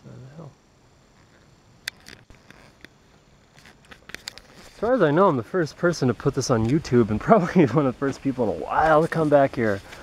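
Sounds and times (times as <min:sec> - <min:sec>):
background hiss: 0:00.0 - 0:10.0
faint clicks and crackles: 0:01.1 - 0:04.9.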